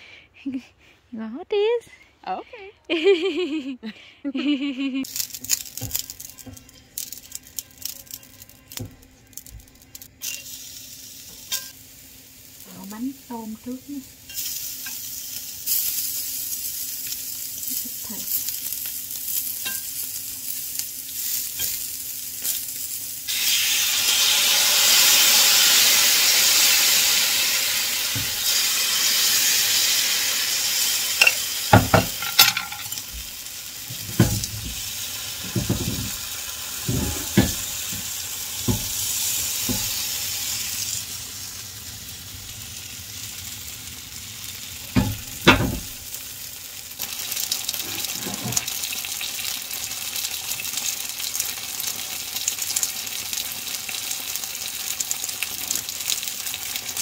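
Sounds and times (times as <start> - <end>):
batter sizzling in a frying pan: 5.0 - 57.0
knocks and clinks against pan: 31.2 - 33.0.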